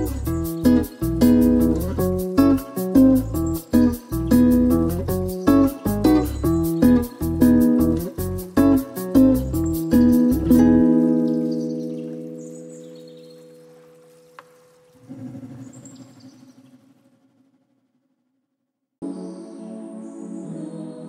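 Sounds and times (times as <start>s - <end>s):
guitar chords strummed: 0.0s - 12.6s.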